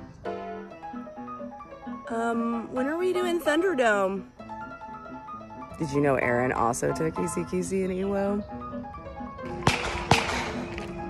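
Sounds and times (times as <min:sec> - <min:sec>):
sharp gunshots: 0:09.5 - 0:10.7.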